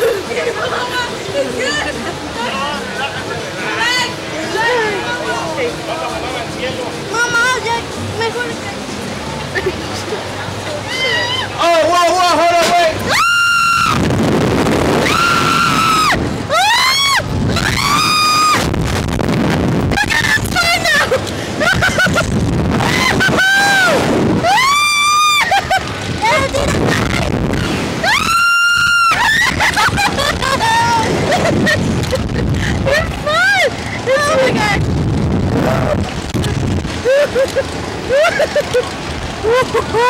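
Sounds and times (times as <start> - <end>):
wind rushing over microphone: 13.0 - 40.0.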